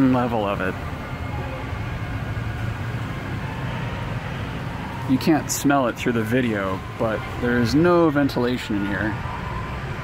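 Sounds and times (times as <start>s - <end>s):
motorcycle engines rumbling: 0.0s - 10.0s.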